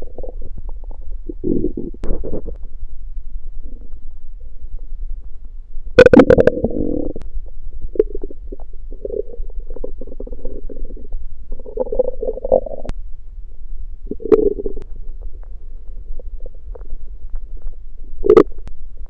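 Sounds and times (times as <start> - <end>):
stomach growling and gurgling: 0.0 - 2.6, 6.0 - 7.2, 7.9 - 12.9, 14.1 - 18.7.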